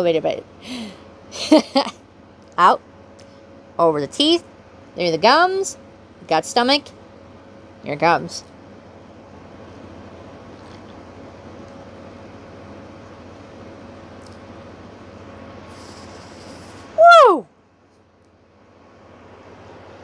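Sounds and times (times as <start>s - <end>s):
steady background hum: 0.0s - 20.0s
woman exclaiming woo: 17.0s - 17.5s.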